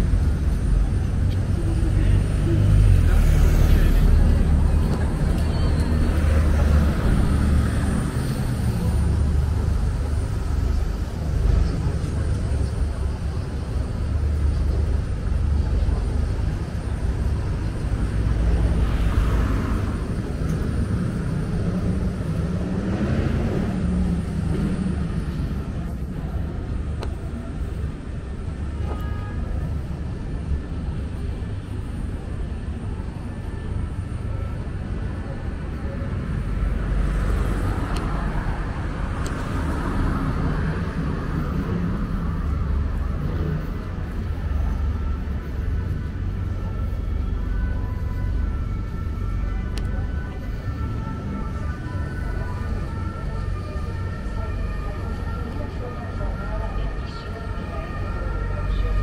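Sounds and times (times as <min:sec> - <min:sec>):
boat engine rumble: 0:00.0 - 0:59.0
road traffic: 0:00.0 - 0:59.0.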